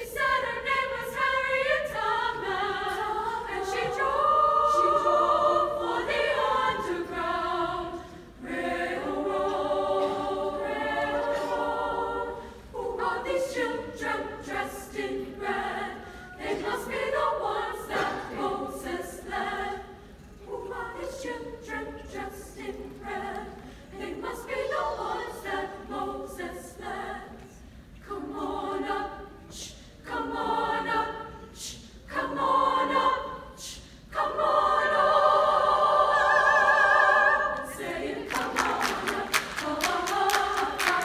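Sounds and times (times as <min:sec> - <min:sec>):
women's choir singing: 0:00.0 - 0:41.0.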